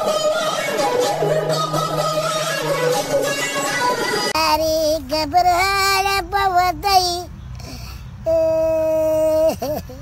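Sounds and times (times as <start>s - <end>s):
child-like voice singing: 0.0s - 9.7s.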